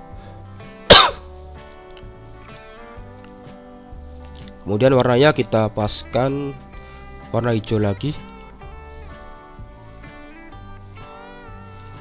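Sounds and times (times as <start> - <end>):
background music with guitar: 0.0 - 12.0
loud cough: 0.9 - 1.2.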